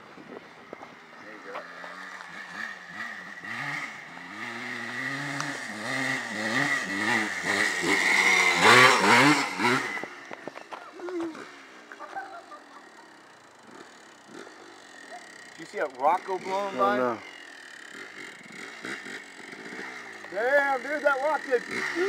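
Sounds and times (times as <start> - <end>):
dirt bike engine revving: 0.6 - 22.0.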